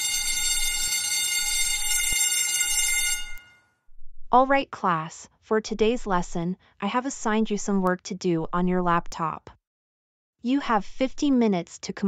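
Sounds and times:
electric bell ringing: 0.0s - 3.6s.

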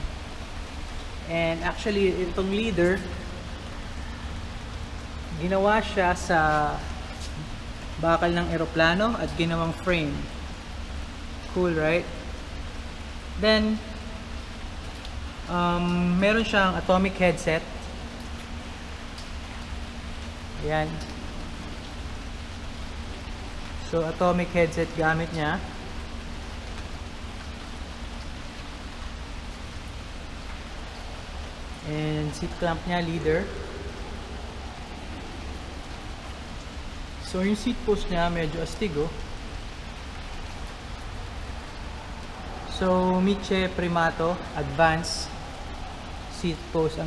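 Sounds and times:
faint steady hum: 0.0s - 47.0s
rain falling: 0.0s - 47.0s
low rumble: 30.8s - 37.3s.

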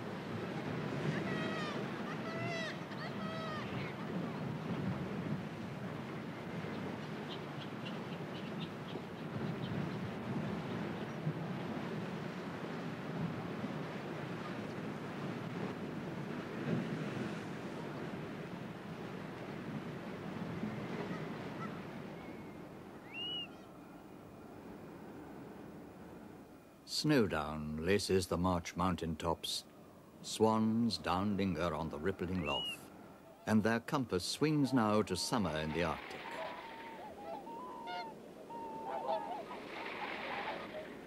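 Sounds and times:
waves breaking against cliffs: 0.0s - 23.1s, 30.2s - 41.0s
seabird calls: 0.5s - 4.9s, 6.2s - 11.2s, 20.6s - 24.1s, 31.0s - 41.0s.

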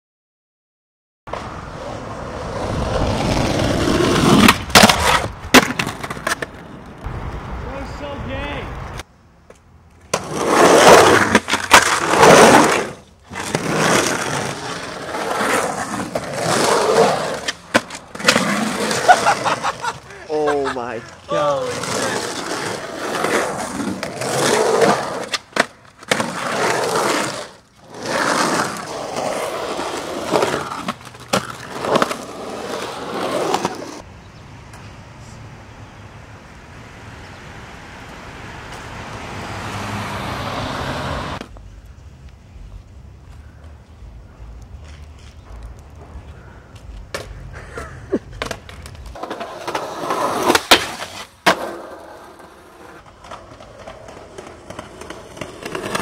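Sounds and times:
skateboard wheels rolling on concrete: 1.3s - 56.0s
man laughing loudly: 19.0s - 21.5s, 47.5s - 48.4s.

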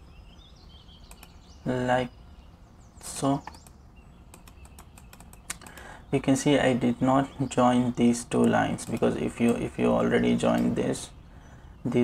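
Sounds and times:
faint steady hum: 0.0s - 12.0s
mouse and keyboard clicks: 3.4s - 5.8s, 8.4s - 9.6s.

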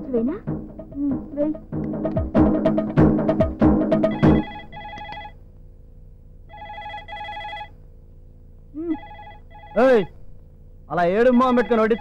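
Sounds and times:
telephone double ring: 4.1s - 5.4s, 6.5s - 7.8s, 9.0s - 9.9s.

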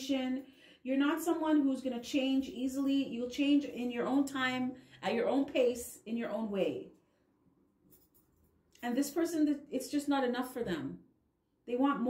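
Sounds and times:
woman's voice: 0.0s - 6.9s, 8.8s - 11.0s, 11.7s - 12.0s.

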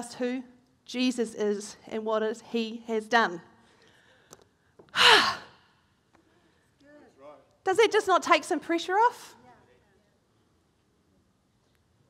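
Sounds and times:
woman sighing: 4.9s - 5.6s.

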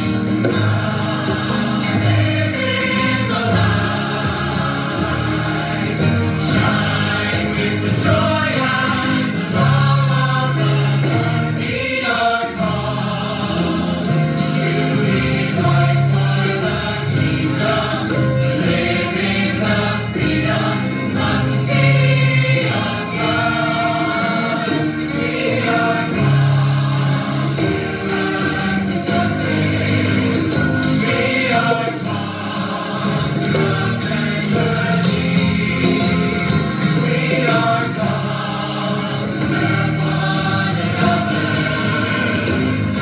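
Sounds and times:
choir singing: 0.0s - 43.0s.

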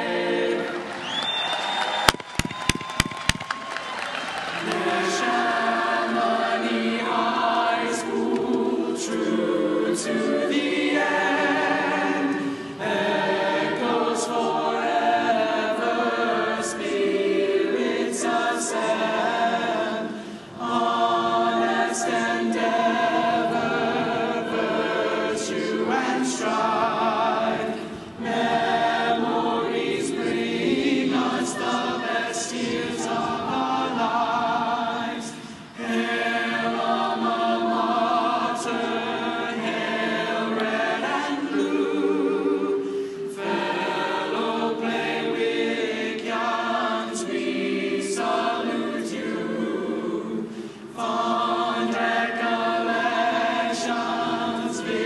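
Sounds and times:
choir singing a cappella: 0.0s - 1.5s, 4.4s - 55.0s
choir breathing: 4.5s - 55.0s.

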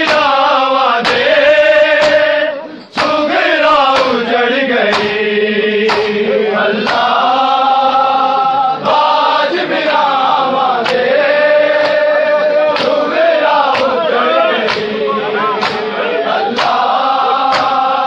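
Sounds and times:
hands slapping chests: 0.0s - 1.3s, 1.9s - 2.4s, 3.0s - 4.2s, 4.8s - 5.2s, 5.8s - 7.2s, 10.8s - 17.9s
men chanting in unison: 0.0s - 18.0s.

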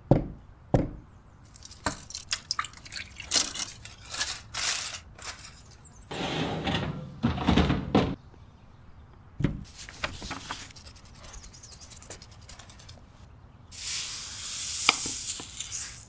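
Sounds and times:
aluminium foil crinkling: 1.5s - 5.8s, 15.2s - 16.0s
rustling and thumps: 6.4s - 8.2s.

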